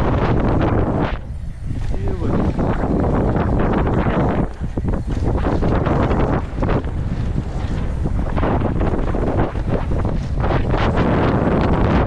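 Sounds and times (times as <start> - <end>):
wind buffeting microphone: 0.0 - 12.0
tyre noise on gravel: 0.9 - 11.5.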